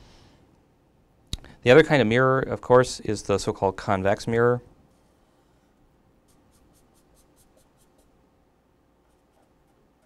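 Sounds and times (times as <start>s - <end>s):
marker strokes on paper: 6.2s - 8.2s.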